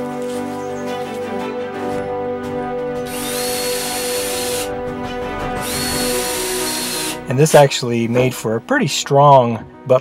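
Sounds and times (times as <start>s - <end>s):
background music: 0.0s - 10.0s
cordless drill whining: 3.1s - 4.7s, 5.6s - 7.3s.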